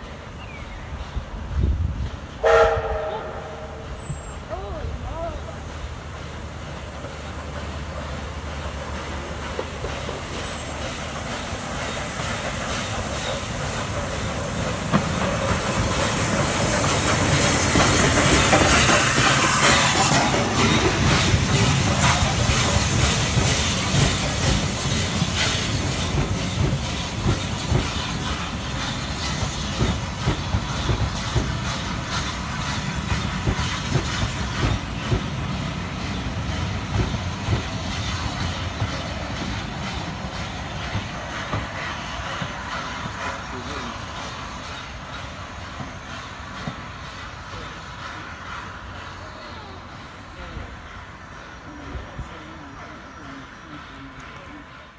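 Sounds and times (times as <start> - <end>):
hiss of steam: 3.8 - 54.9
train wheels clicking over rail joints: 5.6 - 54.9.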